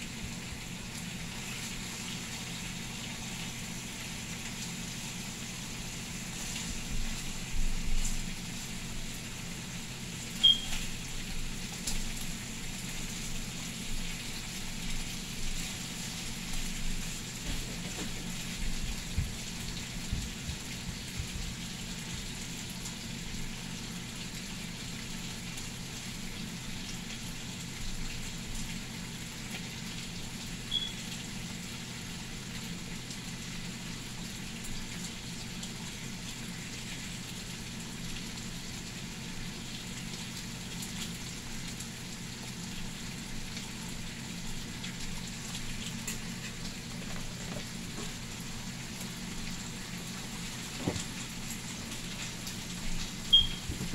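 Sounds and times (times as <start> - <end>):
bacon sizzling in a frying pan: 0.0 - 53.9.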